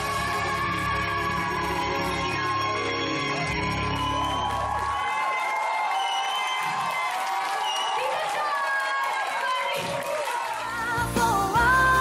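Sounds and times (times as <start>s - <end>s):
audience cheering: 0.0s - 11.0s
live band playing: 10.7s - 12.0s.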